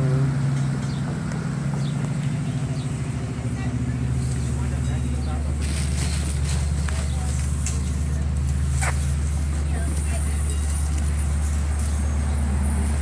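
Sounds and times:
vehicle engine idling: 0.0s - 13.0s
faint voices: 2.1s - 13.0s.

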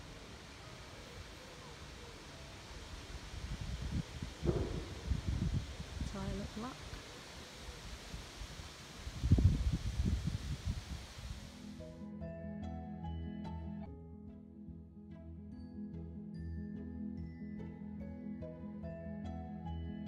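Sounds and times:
wind buffeting microphone: 2.8s - 7.1s, 7.7s - 11.6s.

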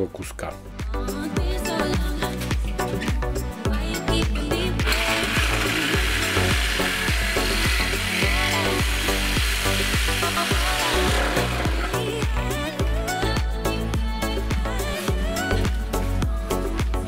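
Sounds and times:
background music with steady beat: 0.0s - 17.0s
power tool cutting steel: 4.8s - 12.8s.

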